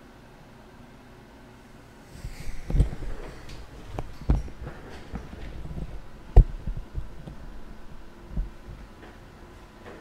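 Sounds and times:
low hum: 0:01.5 - 0:09.0.

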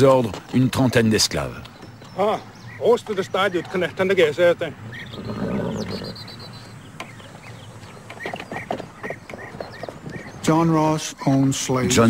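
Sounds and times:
bird trilling: 0:01.7 - 0:10.5
horse snorting: 0:04.8 - 0:06.2.

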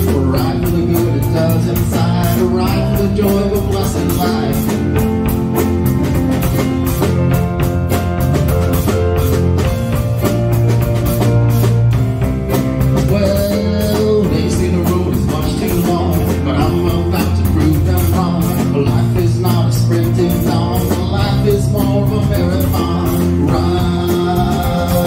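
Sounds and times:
bass guitar: 0:00.0 - 0:25.0
drum kit beat: 0:00.0 - 0:25.0
electric guitar: 0:00.0 - 0:25.0.

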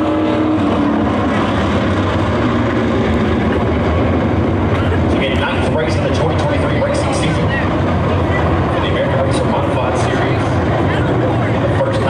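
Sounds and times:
race car engines droning: 0:00.0 - 0:12.0
spectators talking: 0:03.5 - 0:12.0.

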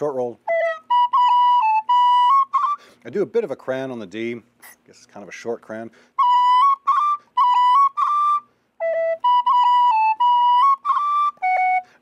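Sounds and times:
tin whistle playing: 0:00.4 - 0:02.9, 0:06.2 - 0:12.0.

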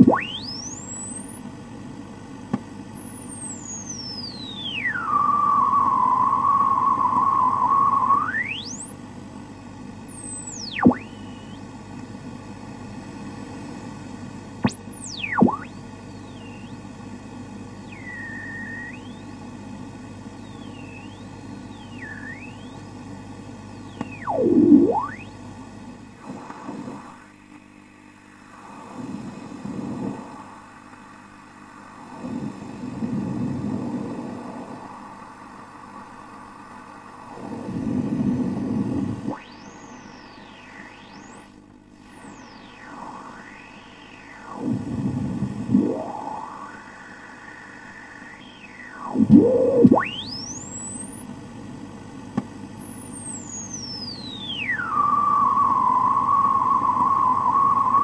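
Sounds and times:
gliding interference whistles: 0:00.0 - 0:01.6, 0:02.6 - 0:09.0, 0:10.0 - 0:11.7, 0:14.6 - 0:17.0, 0:17.6 - 0:19.4, 0:20.3 - 0:23.0, 0:23.7 - 0:25.4, 0:38.5 - 0:51.5, 0:52.4 - 0:58.0
radio static hiss: 0:00.0 - 0:58.0.

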